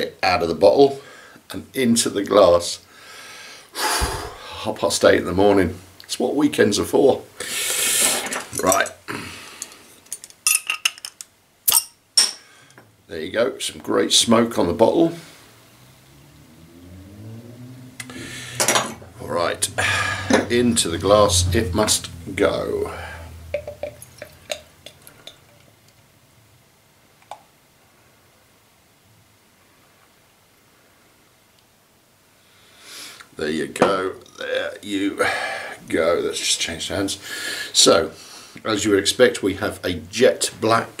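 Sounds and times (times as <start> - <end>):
bottle opener clinking on cap: 11.7 - 12.4, 23.6 - 25.6.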